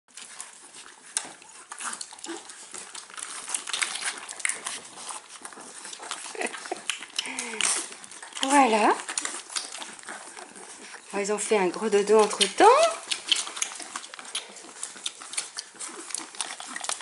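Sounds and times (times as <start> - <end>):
paws scrabbling on tile: 0.1 - 17.0
puppies suckling: 0.1 - 17.0.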